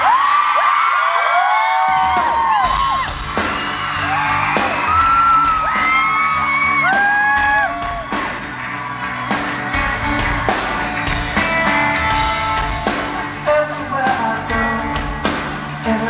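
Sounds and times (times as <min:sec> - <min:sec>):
crowd screaming and whooping: 0:00.0 - 0:16.0
live pop band: 0:00.0 - 0:16.0
drum hits: 0:01.9 - 0:06.0.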